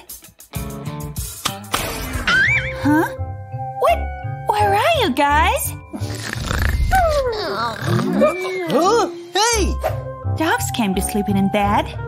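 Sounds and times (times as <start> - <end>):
puppy whining: 6.9 - 9.2.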